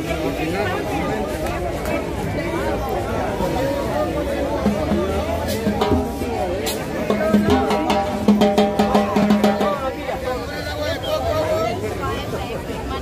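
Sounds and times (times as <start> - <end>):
crowd chattering: 0.0 - 13.0
street band drums and percussion: 0.0 - 13.0.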